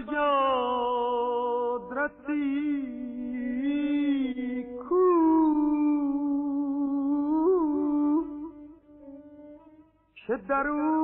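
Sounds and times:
person singing classical vocal: 0:00.0 - 0:09.6, 0:10.2 - 0:11.0.

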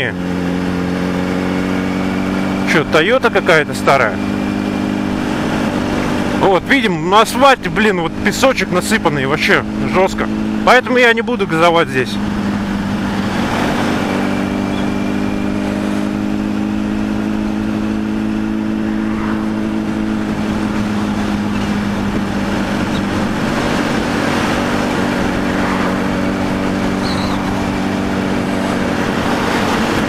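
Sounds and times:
motorcycle engine cruising: 0:00.0 - 0:30.0
wind and road rush: 0:00.0 - 0:30.0.

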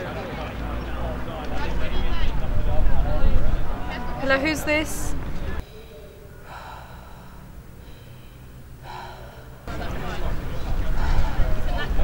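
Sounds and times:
low steady hum: 0:02.0 - 0:12.0
heavy breaths on phone: 0:05.6 - 0:09.8, 0:10.8 - 0:12.0.

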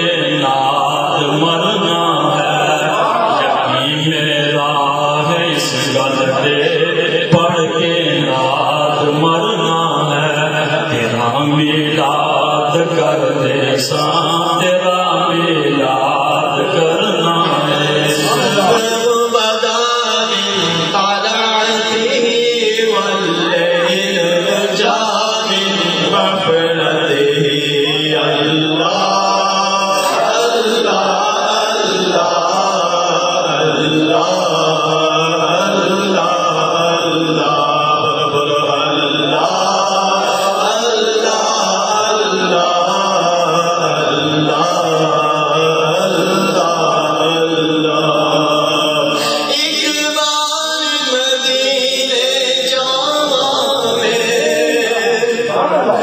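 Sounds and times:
boy chanting devotional poem: 0:00.0 - 0:56.0.

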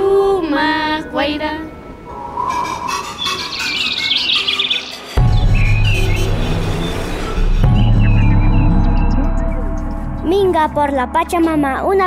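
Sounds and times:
music with low drone: 0:00.0 - 0:12.0
birds chirping in trills: 0:02.1 - 0:10.3.

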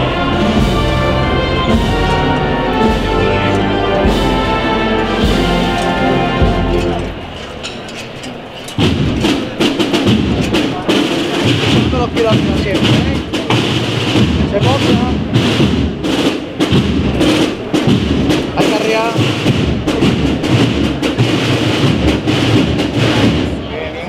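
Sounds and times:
brass band playing march: 0:00.0 - 0:07.5, 0:08.7 - 0:23.7
crowd voices: 0:00.0 - 0:24.0
scattered knocks: 0:05.1 - 0:23.6.

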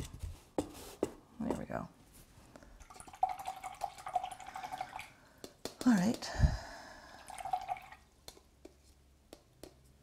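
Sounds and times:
trickling water: 0:02.8 - 0:05.4, 0:06.7 - 0:08.2
small clicks and taps: 0:08.2 - 0:09.9.

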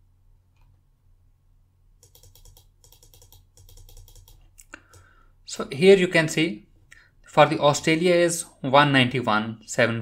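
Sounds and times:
keyboard keys clicking: 0:02.0 - 0:05.0.

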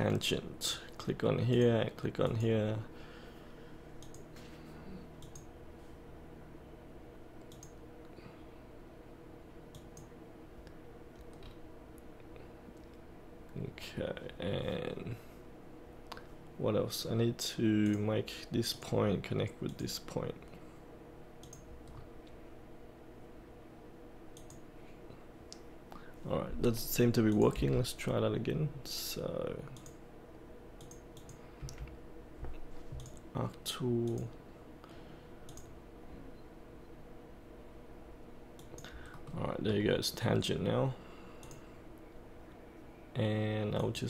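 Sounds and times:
low room hum: 0:00.0 - 0:44.0
computer mouse clicks: 0:04.0 - 0:04.3, 0:05.2 - 0:05.5, 0:07.4 - 0:07.8, 0:21.4 - 0:22.1, 0:24.4 - 0:24.6, 0:30.8 - 0:31.9, 0:33.0 - 0:33.2, 0:35.5 - 0:35.7, 0:38.6 - 0:39.2, 0:41.4 - 0:41.6.

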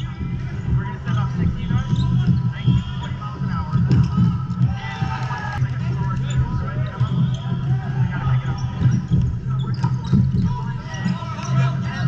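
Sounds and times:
busy gym hum: 0:00.0 - 0:12.0
players calling out: 0:00.0 - 0:12.0
sneakers squeaking: 0:00.0 - 0:12.0.

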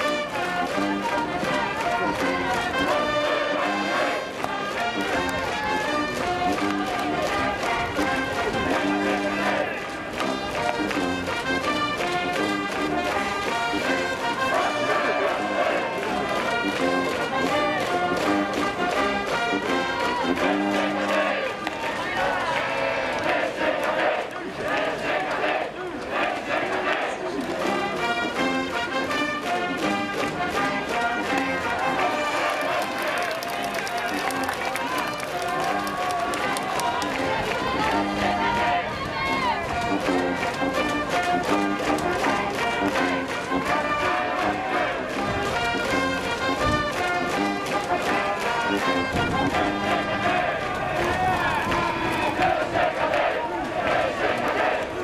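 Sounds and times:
brass band playing: 0:00.0 - 0:55.0
crowd chanting: 0:00.0 - 0:55.0.

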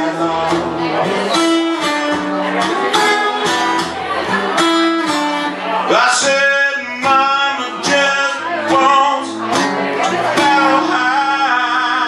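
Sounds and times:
man singing: 0:00.0 - 0:01.6, 0:05.8 - 0:12.0
acoustic guitar strummed: 0:00.0 - 0:12.0.

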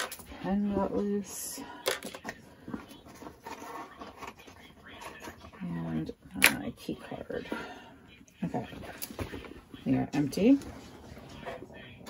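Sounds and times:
small items set on hard shelf: 0:00.0 - 0:05.6.

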